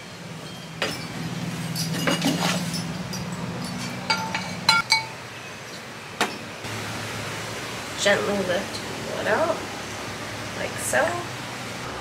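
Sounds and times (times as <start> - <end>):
sharp ringing clinks: 0.4 - 5.2.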